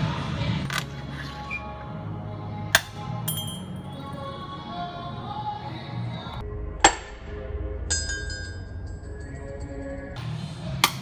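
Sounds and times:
background music: 0.0 - 11.0
coin clinking on ceramic dish: 3.3 - 4.0
high metallic ringing: 3.3 - 4.2, 7.9 - 10.1.

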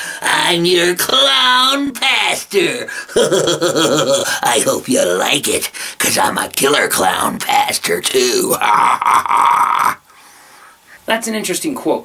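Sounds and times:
man laughing hoarsely: 2.9 - 4.4, 8.6 - 10.0.

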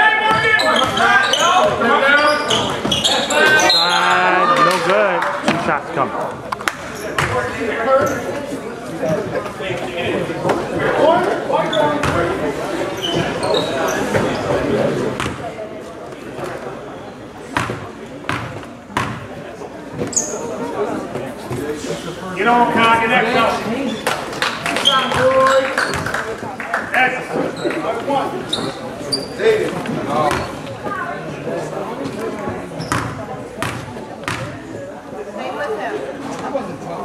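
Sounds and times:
voices in a gymnasium: 0.0 - 37.0.

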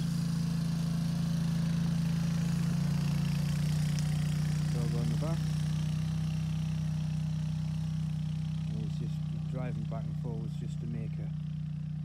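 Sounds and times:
engine humming steadily: 0.0 - 12.0.

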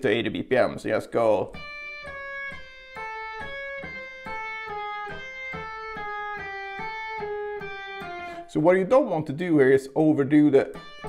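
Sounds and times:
electric guitar legato notes: 1.4 - 9.5, 10.6 - 11.0.

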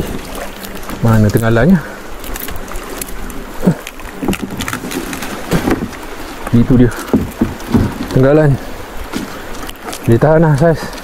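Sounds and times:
water rushing: 0.0 - 11.0
short dull knocks: 7.0 - 8.2.

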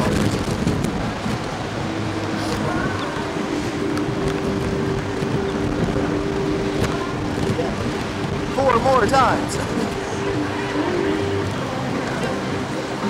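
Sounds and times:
low two-note hum: 0.0 - 13.0
wind rushing over microphone: 0.0 - 13.0.

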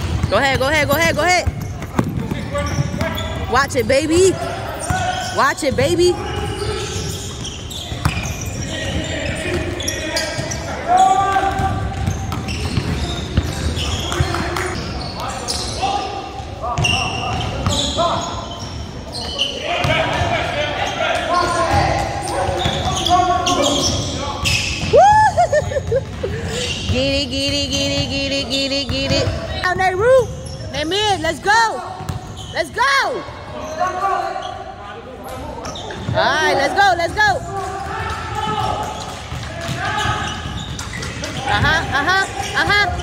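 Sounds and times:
basketball bouncing: 0.0 - 9.8, 11.4 - 14.8, 24.8 - 30.2, 32.0 - 32.3
players' voices echoing: 0.0 - 43.0.

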